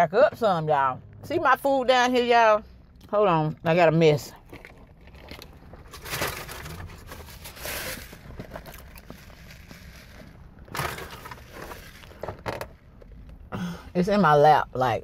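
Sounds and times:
paper packaging crinkling: 0:04.6 - 0:12.2.

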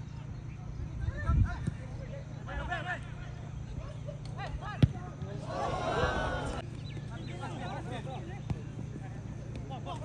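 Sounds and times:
football kick thud: 0:04.7 - 0:05.3.

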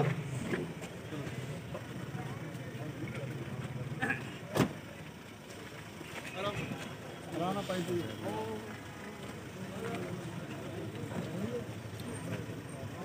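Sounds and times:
crowd murmuring: 0:00.0 - 0:13.0
vehicle engine idling: 0:00.0 - 0:13.0.

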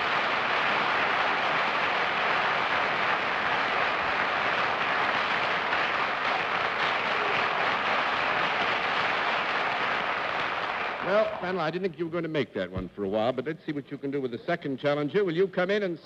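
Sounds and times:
studio audience applauding: 0:00.0 - 0:11.6.

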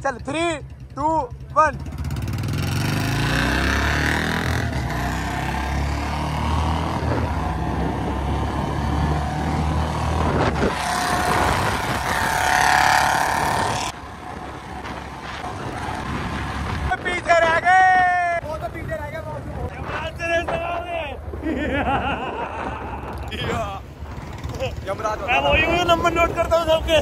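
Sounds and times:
motorcycles accelerating hard: 0:00.9 - 0:16.9, 0:21.8 - 0:27.0
motorcycle riding past: 0:01.7 - 0:16.8.

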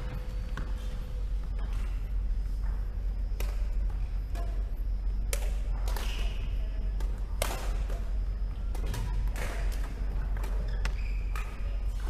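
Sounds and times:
steady low rumble: 0:00.0 - 0:10.4
rackets hitting shuttlecock: 0:03.4 - 0:04.6, 0:05.2 - 0:12.0
shoe squeaks: 0:10.6 - 0:11.9.

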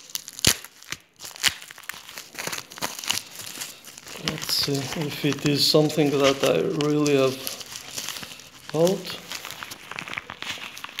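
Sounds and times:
bubble wrap crackling: 0:00.0 - 0:11.0.

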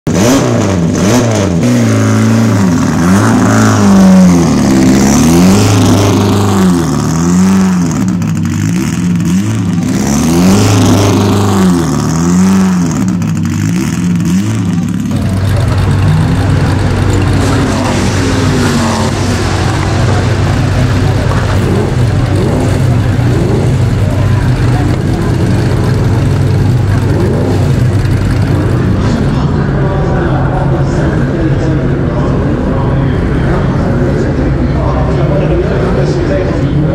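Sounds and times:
racing car engine revving: 0:00.1 - 0:36.9.

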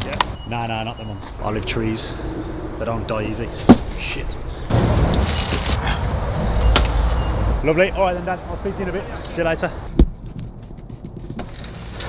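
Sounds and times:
low rumble: 0:01.2 - 0:08.8.

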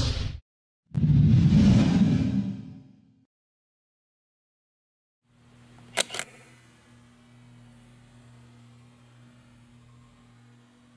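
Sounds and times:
steady low hum: 0:05.3 - 0:10.9
camera shutter clicks: 0:05.9 - 0:06.5.

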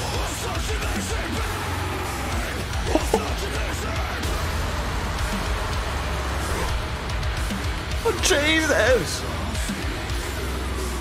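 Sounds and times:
heavy metal music: 0:00.0 - 0:11.0.

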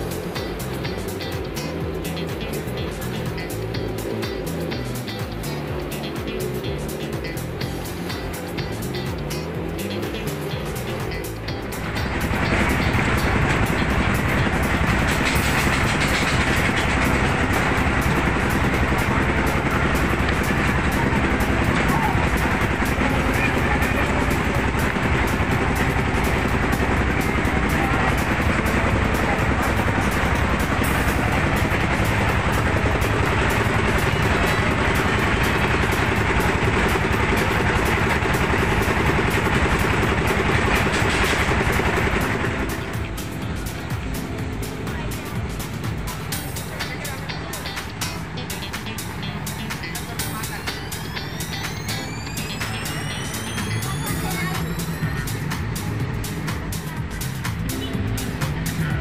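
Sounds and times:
engine noise: 0:00.0 - 0:59.0
music over loudspeakers: 0:00.0 - 0:59.0.

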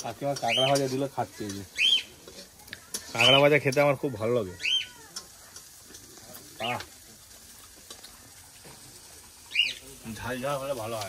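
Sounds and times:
faint crackling hiss: 0:00.0 - 0:11.0.

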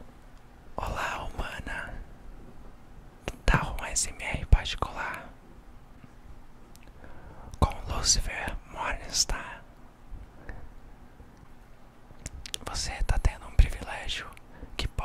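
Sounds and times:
man whispering: 0:00.8 - 0:02.1, 0:03.3 - 0:05.4, 0:07.5 - 0:09.7, 0:12.6 - 0:15.0.

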